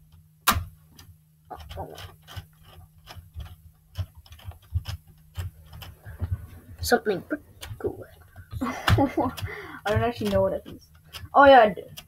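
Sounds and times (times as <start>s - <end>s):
plastic gears clicking: 0.5s - 12.0s.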